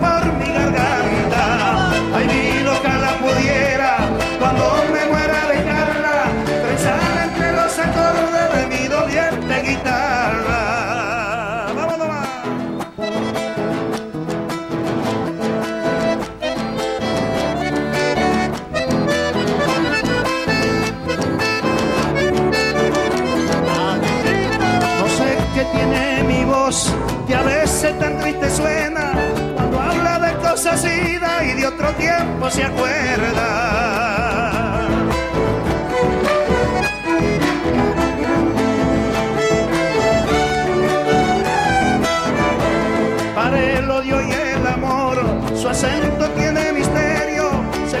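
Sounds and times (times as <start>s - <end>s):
guitar-led band: 0.0s - 48.0s
held melody line: 0.0s - 48.0s
man singing with vibrato: 0.0s - 48.0s.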